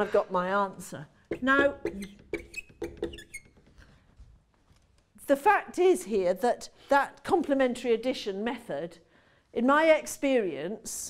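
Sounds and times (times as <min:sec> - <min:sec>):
marker pen squeaking on whiteboard: 0:01.3 - 0:05.0.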